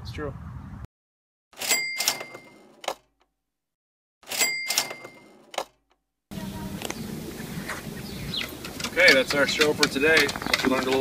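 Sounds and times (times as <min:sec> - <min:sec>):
cash register ka-ching: 0:01.6 - 0:03.2, 0:04.2 - 0:05.7
outdoor background noise: 0:04.2 - 0:11.0.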